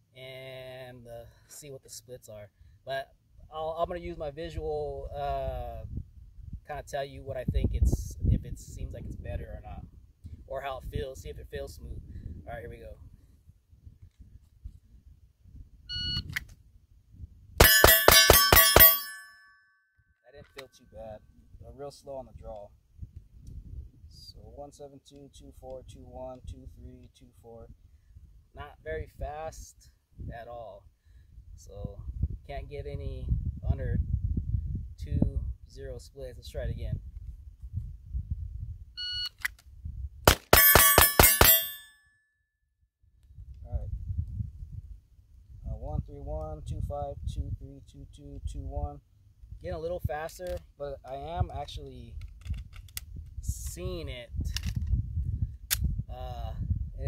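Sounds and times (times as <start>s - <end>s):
steel targets ringing: 17.6s - 19.6s, 40.4s - 42.0s
rapid pistol shots: 40.3s - 41.8s.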